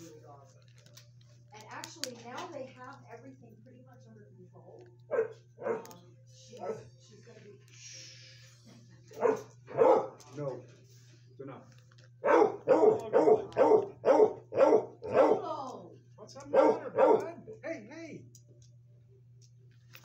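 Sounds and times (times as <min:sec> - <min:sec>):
dog barking: 0:05.1 - 0:06.0, 0:06.6 - 0:06.9, 0:09.1 - 0:10.2, 0:12.2 - 0:15.6, 0:16.4 - 0:17.4.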